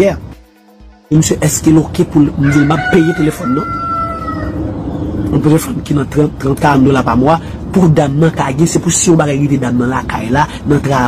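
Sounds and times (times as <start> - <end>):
man talking: 0.0 - 0.3, 1.1 - 3.8, 5.3 - 11.0
rooster crowing: 2.2 - 5.3.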